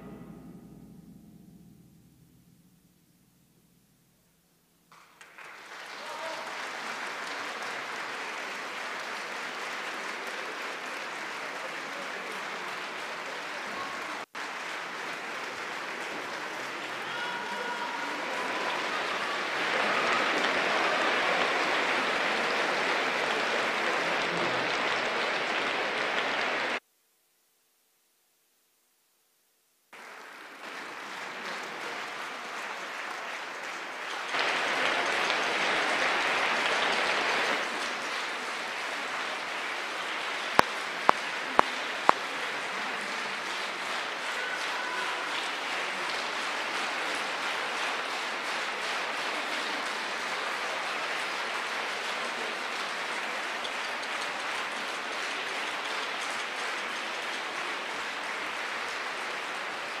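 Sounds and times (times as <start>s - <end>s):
audience applauding: 4.9s - 26.8s, 30.0s - 60.0s.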